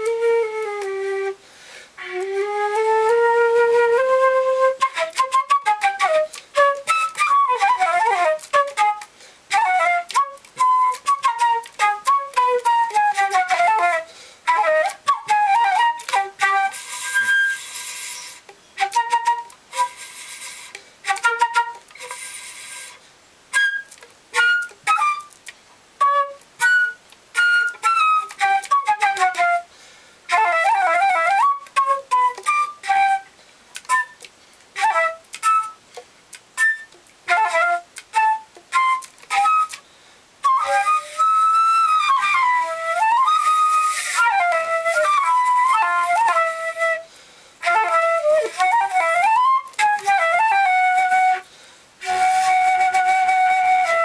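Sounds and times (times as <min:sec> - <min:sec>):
solo flute playing: 0:00.0 - 0:54.0.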